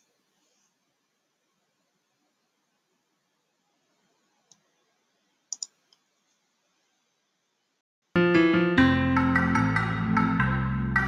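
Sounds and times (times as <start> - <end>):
computer mouse clicking: 5.5 - 6.0.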